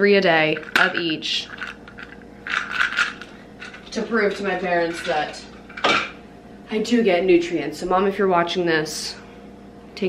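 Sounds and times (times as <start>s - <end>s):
capsules rattling in plastic bottles: 0.5s - 6.1s.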